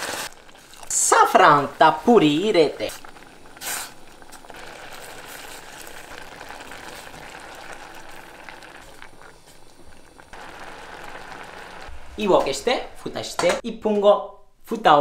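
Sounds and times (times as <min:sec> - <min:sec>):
rice bubbling in a pot: 0:00.0 - 0:12.7.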